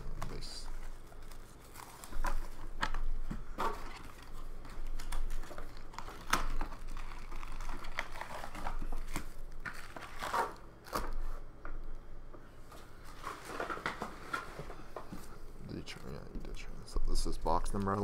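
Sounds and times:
card packaging crinkling and tearing: 0.0s - 11.4s, 15.8s - 18.0s.

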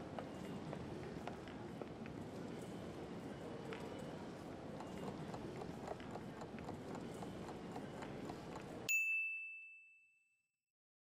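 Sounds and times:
light clatter and murmur: 0.0s - 8.9s
high chime: 8.9s - 10.4s.

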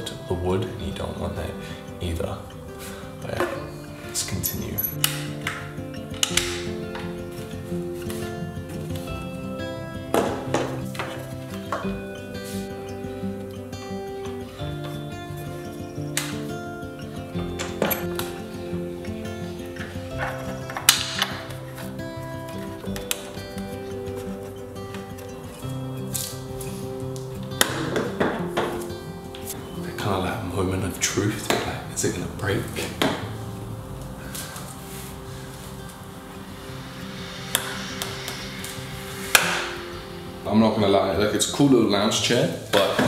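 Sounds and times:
background music with held notes: 0.0s - 43.0s.

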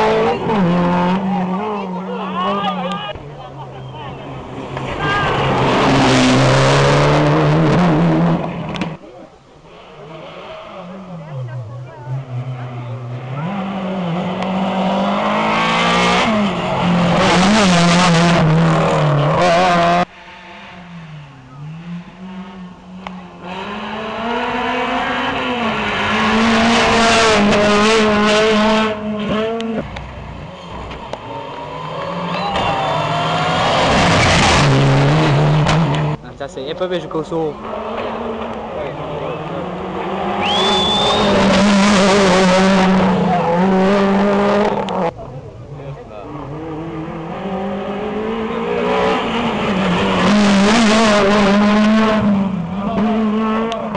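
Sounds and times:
rally car engines revving past: 0.0s - 53.9s.

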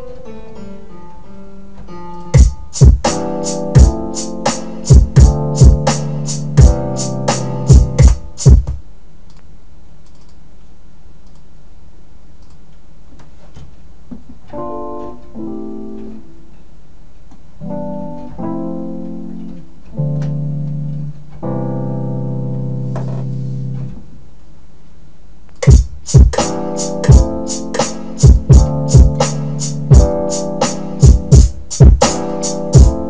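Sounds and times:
piano-like keyboard chords: 0.0s - 8.8s, 14.5s - 24.2s, 25.6s - 33.0s
sharp drum beat hits: 2.4s - 8.8s, 25.6s - 33.0s.

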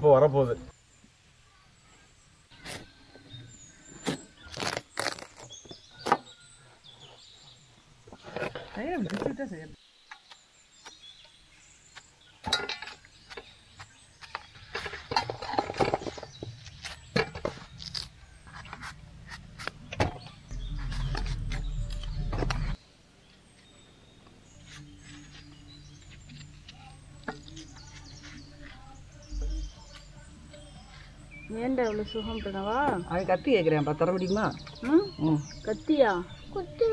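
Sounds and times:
low rumble: 20.5s - 22.8s.

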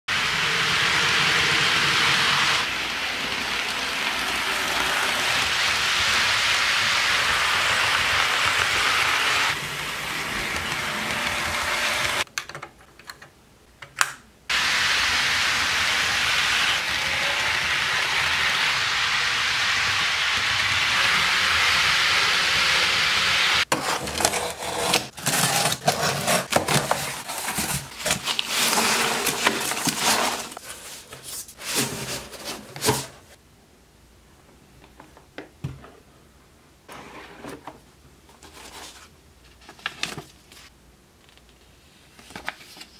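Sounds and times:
model train motor whirring: 0.2s - 12.2s.

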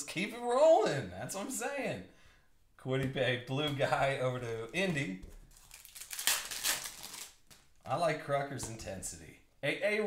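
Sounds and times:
foil wrapper crinkling: 5.4s - 7.8s.

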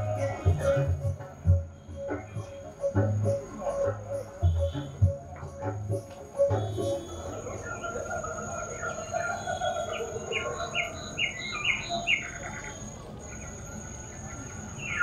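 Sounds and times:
high insect trill: 0.0s - 15.0s
birds chirping: 6.0s - 15.0s.

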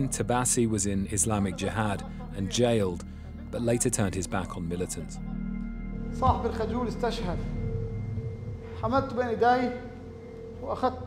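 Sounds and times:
steady low background tone: 0.0s - 11.0s.

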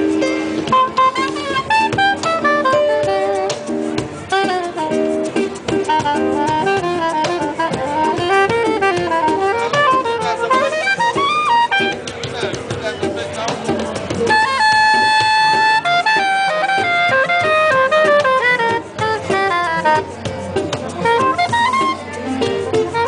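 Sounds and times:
cajon hand percussion: 0.0s - 23.0s
soprano woodwind melody: 0.6s - 12.0s, 14.3s - 20.1s.

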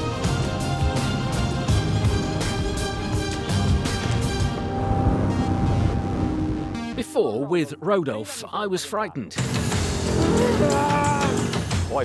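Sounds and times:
background music with a beat: 0.0s - 7.0s, 9.2s - 12.0s
held chords: 9.6s - 11.9s.

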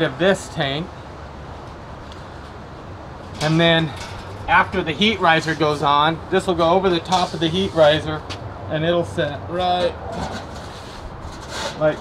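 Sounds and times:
metal scraping on metal: 9.6s - 12.0s.

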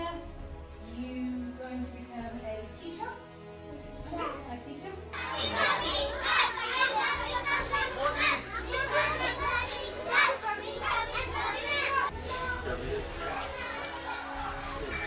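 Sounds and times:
children calling out: 5.2s - 15.0s.

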